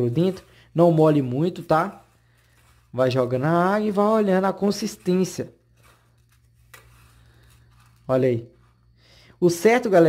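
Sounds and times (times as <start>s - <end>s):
fingers kneading wet granules: 0.0s - 9.0s.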